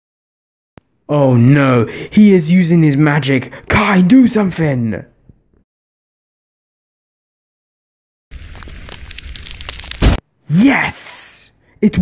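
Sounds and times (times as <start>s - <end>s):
crackling magic energy effect: 8.3s - 10.2s.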